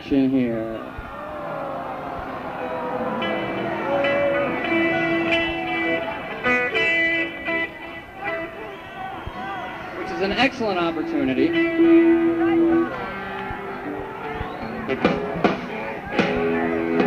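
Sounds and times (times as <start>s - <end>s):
crowd murmur: 0.5s - 17.0s
amplified instrument noodling: 0.8s - 17.0s.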